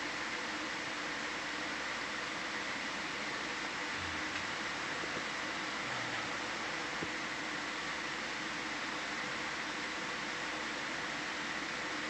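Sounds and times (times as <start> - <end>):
steady hiss: 0.0 - 12.0
faint low hum: 0.7 - 12.0.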